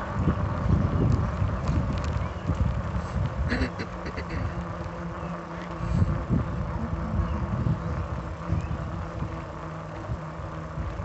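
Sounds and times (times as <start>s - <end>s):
steady low hum: 0.0s - 11.0s
wheels rolling on concrete: 0.0s - 11.0s.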